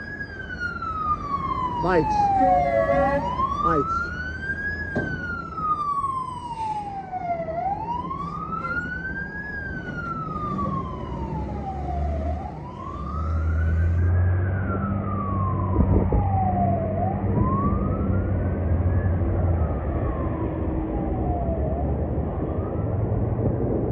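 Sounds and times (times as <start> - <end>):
fire truck wail siren: 0.0 - 23.9
truck engine pulling away: 9.6 - 15.6.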